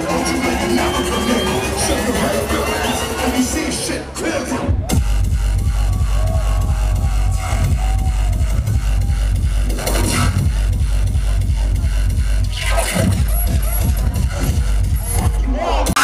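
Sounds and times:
loud industrial hardcore music: 0.0s - 16.0s
heavy kick drum: 4.9s - 16.0s.

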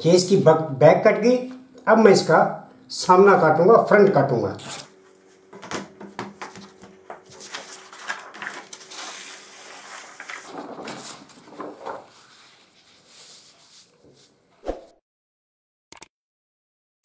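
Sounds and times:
stiff paper rustling and crackling: 6.4s - 13.9s.

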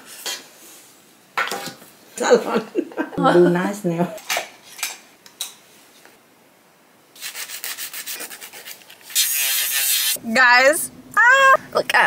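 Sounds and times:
nail file rubbing fingernails: 7.2s - 10.2s.

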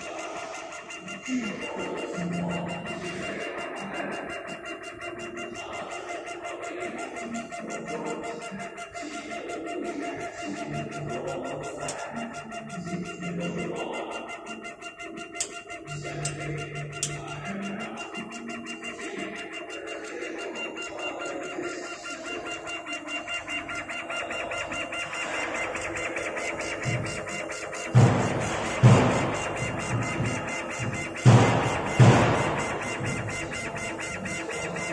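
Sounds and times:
fast even motor buzz: 0.0s - 34.9s
sharp ticks: 0.0s - 34.9s
steady machine hum: 0.0s - 34.9s
stepper motors whining: 0.0s - 34.9s.

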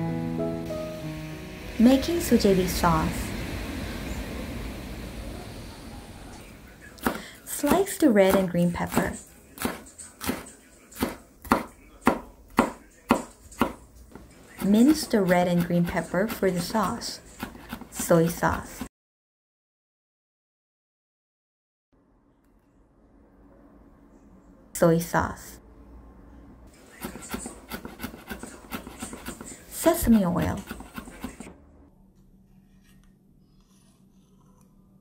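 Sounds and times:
faint hum: 0.0s - 9.8s, 22.0s - 27.7s
knife chopping on wooden board: 7.0s - 18.9s, 26.9s - 31.6s.

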